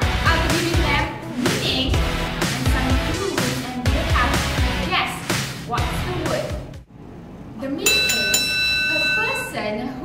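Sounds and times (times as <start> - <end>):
bell dings: 7.8 - 9.8
bell ringing tone: 7.8 - 9.9.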